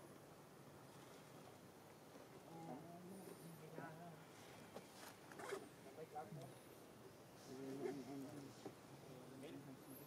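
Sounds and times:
rustles: 0:00.8 - 0:10.0
faint distant voices: 0:02.2 - 0:10.0.

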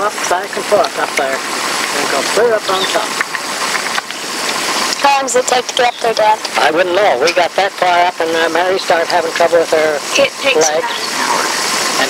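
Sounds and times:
car ride background noise: 0:00.0 - 0:12.0
tape hiss: 0:00.0 - 0:12.0.

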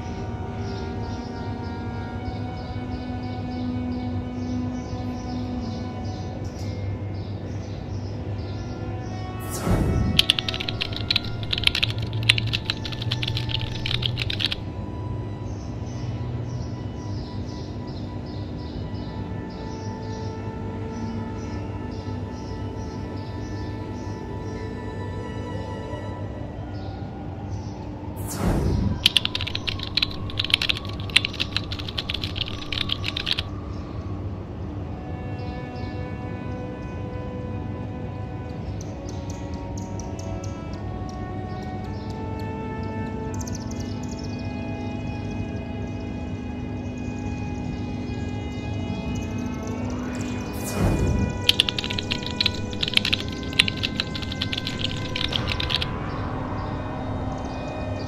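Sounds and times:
droning ambient music: 0:00.0 - 0:58.0
keyboard typing clicks: 0:10.0 - 0:14.6, 0:28.9 - 0:33.5, 0:51.1 - 0:55.9.

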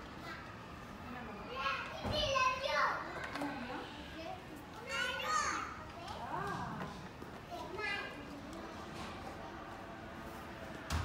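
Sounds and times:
young children chattering: 0:00.1 - 0:10.0.

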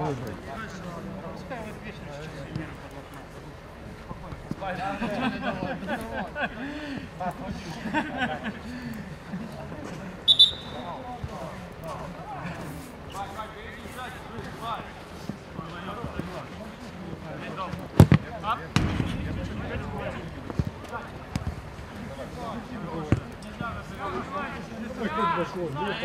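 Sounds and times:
players' voices calling: 0:10.3 - 0:10.9, 0:18.8 - 0:26.0.

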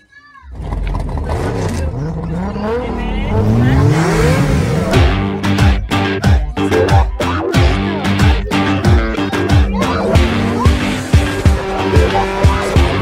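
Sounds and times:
car engine revving: 0:00.5 - 0:13.0
music: 0:04.2 - 0:13.0.

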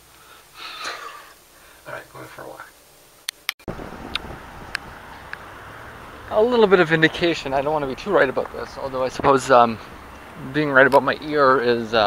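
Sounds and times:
wind on microphone: 0:03.7 - 0:06.3
low traffic rumble: 0:03.7 - 0:12.0
footsteps on pavement: 0:07.2 - 0:11.1.

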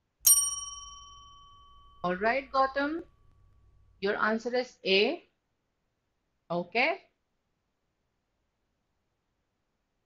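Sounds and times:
bell-like ding: 0:00.3 - 0:03.9.

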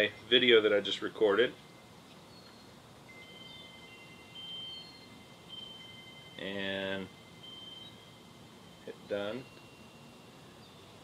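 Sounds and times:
faint high ringing tones: 0:00.0 - 0:11.0.

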